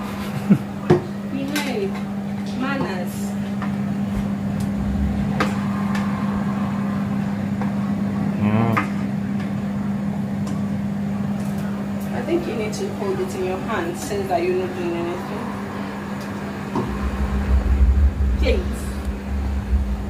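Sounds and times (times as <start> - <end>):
extractor fan hum: 0.0 - 20.0.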